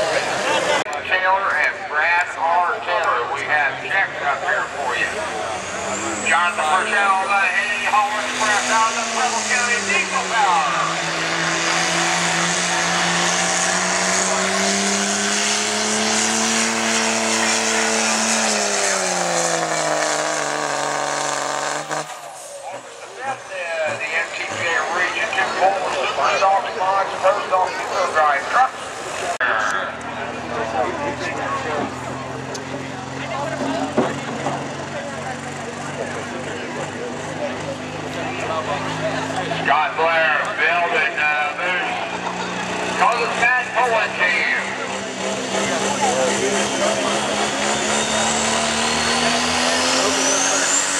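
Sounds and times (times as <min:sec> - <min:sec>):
crowd voices: 0:00.0 - 0:19.4, 0:22.0 - 0:50.9
diesel truck engine under load: 0:00.0 - 0:50.9
diesel truck idling: 0:22.1 - 0:49.5.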